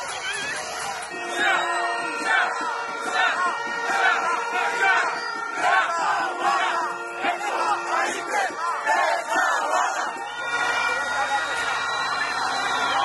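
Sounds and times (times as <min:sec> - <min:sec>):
crowd shouting and chanting: 0:00.0 - 0:13.0.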